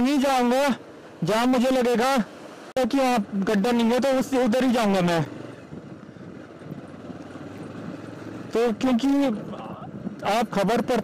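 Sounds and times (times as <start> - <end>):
tyres on wet road: 0.0 - 11.0
vehicle engine running: 0.0 - 11.0.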